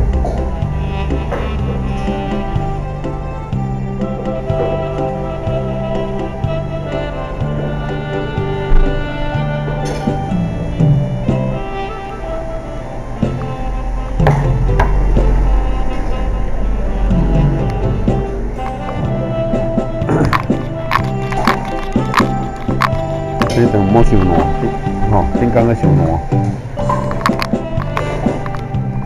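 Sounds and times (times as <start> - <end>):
backing track: 0.0 - 29.0
saxophone melody: 0.0 - 29.0.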